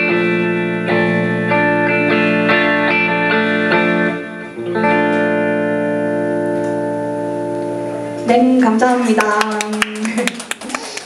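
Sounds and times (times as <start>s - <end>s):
electric guitar chord ringing: 0.0s - 8.9s
audience cheering: 10.0s - 11.0s.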